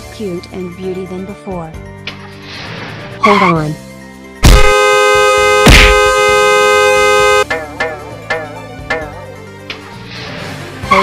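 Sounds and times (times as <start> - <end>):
light warbling music: 0.0 - 6.2, 7.2 - 11.0
car horn blast: 4.4 - 7.5.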